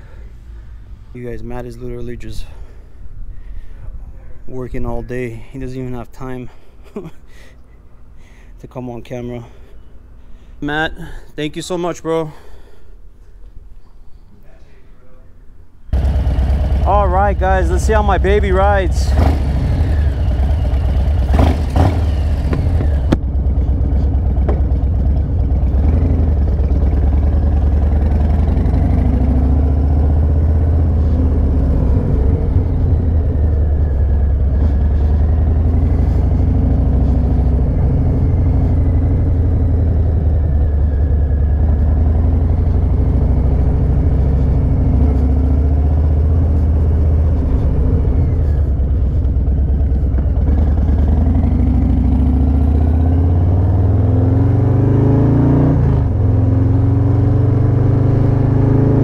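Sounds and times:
motorcycle engine running: 0:15.9 - 0:55.2.

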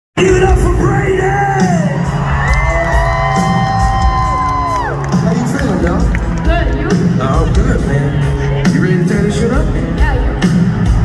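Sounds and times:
live rock band playing: 0:00.2 - 0:11.0
crowd cheering and whooping: 0:01.5 - 0:06.9.

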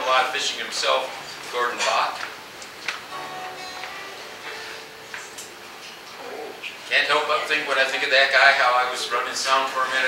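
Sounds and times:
acoustic guitar played softly: 0:02.8 - 0:06.1.

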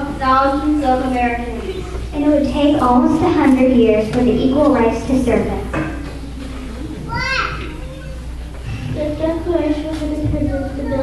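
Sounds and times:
murmur of children's voices: 0:00.0 - 0:11.0
high-pitched child's voice: 0:07.1 - 0:08.2, 0:09.0 - 0:11.0.

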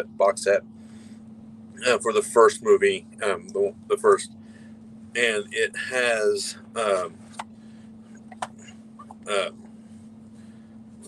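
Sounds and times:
man saying uh: 0:00.0 - 0:00.6, 0:01.8 - 0:04.3, 0:05.2 - 0:07.2, 0:09.2 - 0:09.6
steady low hum: 0:00.0 - 0:11.0.

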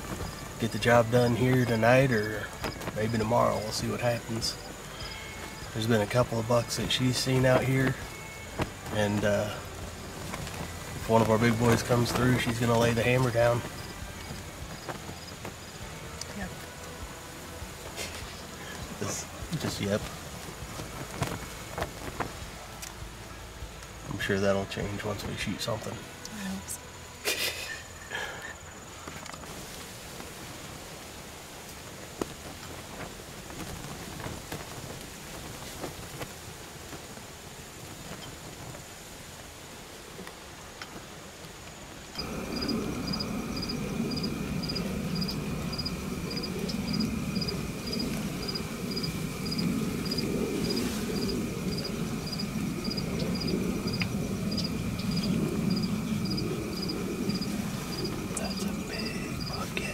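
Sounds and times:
insect chirping: 0:00.0 - 0:22.4, 0:23.2 - 0:30.5, 0:34.0 - 0:59.9
gusting wind rumble: 0:00.0 - 0:25.4, 0:29.5 - 0:59.9
insects trilling: 0:00.0 - 0:59.9.

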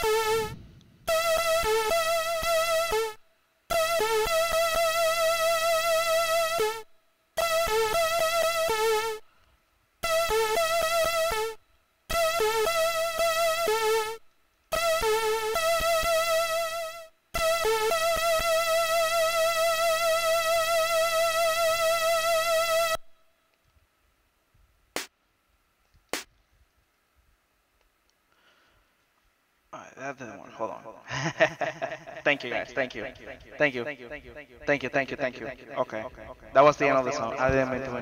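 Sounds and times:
chiptune synthesizer music: 0:00.0 - 0:06.8, 0:07.4 - 0:09.2, 0:10.0 - 0:22.9.

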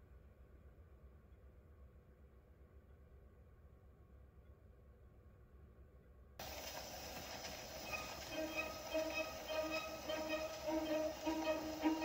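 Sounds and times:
record surface hiss and crackle: 0:06.4 - 0:12.0
orchestra playing short notes: 0:07.8 - 0:12.0.

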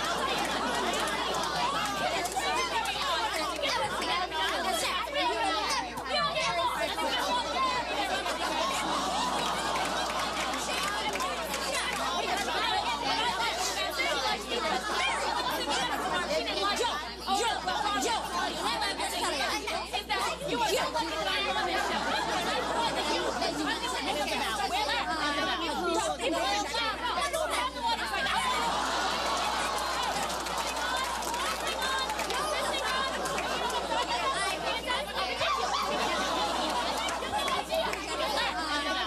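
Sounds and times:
women talking over one another: 0:00.0 - 0:39.0.

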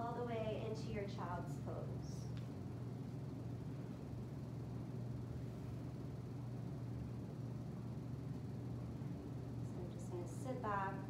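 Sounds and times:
fan humming with faint hiss: 0:00.0 - 0:11.0.

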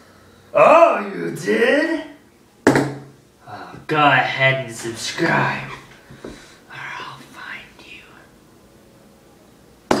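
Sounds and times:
person whispering: 0:06.7 - 0:08.3.

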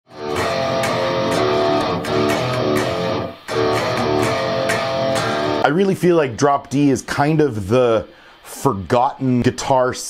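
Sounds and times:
electric guitar riff: 0:00.1 - 0:06.4.

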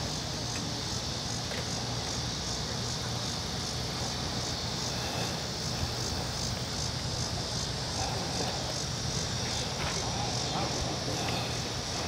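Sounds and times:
insects buzzing in pulses: 0:00.0 - 0:12.0.

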